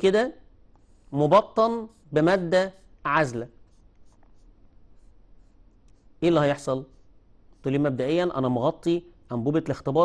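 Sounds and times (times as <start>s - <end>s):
marker scratching on paper: 0.6s - 8.4s.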